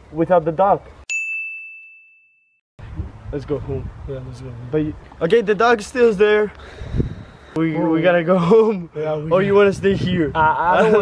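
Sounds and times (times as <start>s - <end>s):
bright ding: 1.1s - 2.5s.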